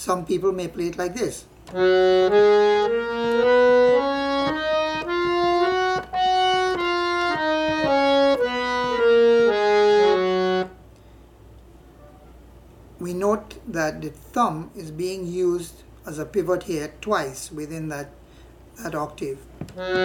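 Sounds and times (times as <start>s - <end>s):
harmonium playing a scale: 1.7s - 10.8s, 19.8s - 20.0s.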